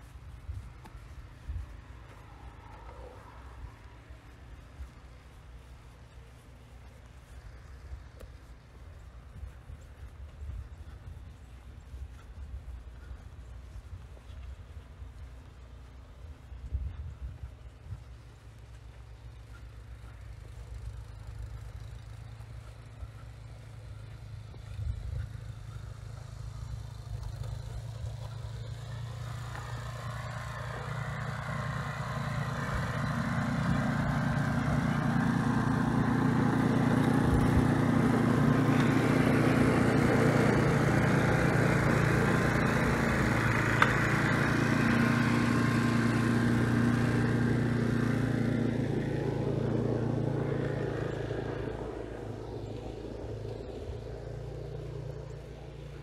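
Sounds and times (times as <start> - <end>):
engine passing by: 0.0 - 56.0.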